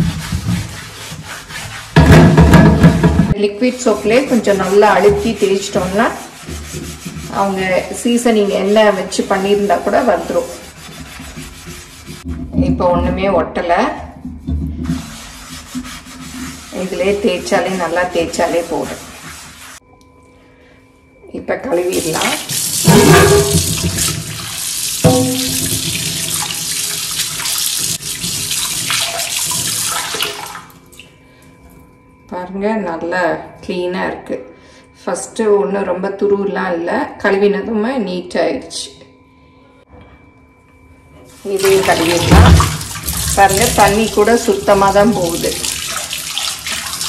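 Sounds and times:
scrub pad rubbing cast iron pan: 0.0 - 12.6, 14.2 - 19.8, 21.9 - 30.5, 41.4 - 47.0
water splashing on metal pan: 21.9 - 30.8, 41.4 - 47.0
tap water running into sink: 21.9 - 31.1, 41.4 - 47.0
ringing metal clank: 22.9 - 23.8, 25.0 - 26.0
person speaking: 43.3 - 45.7.

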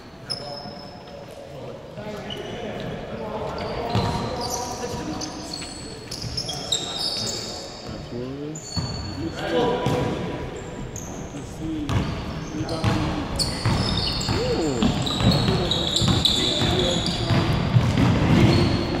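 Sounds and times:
sneakers squeaking: 0.0 - 19.0
basketball bouncing on hardwood: 12.8 - 19.0.

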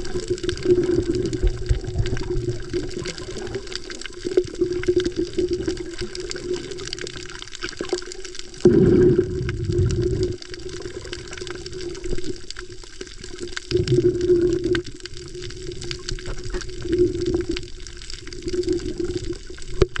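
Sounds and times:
faint underwater clicks: 0.0 - 20.0
muffled underwater wash: 0.0 - 20.0.

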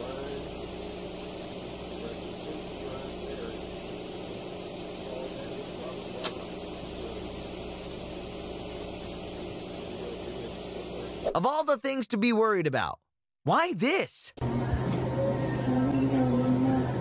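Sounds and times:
low hum and rumble: 0.0 - 11.3, 14.4 - 17.0
sharp click: 6.2 - 6.4.

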